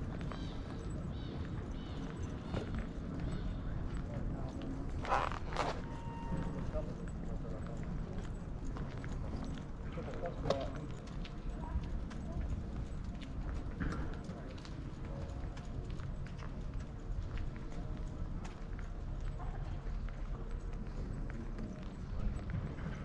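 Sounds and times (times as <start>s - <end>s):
voices of passers-by: 0.0s - 23.0s.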